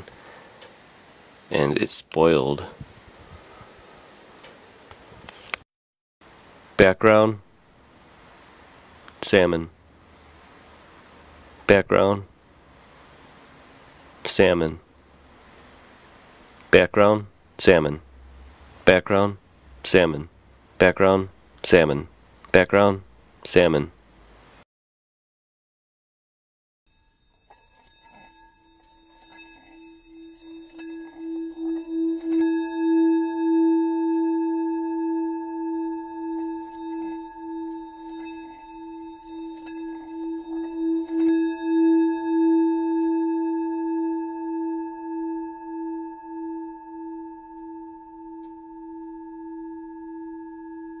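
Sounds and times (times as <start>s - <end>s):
singing bowl ringing: 26.9s - 51.0s.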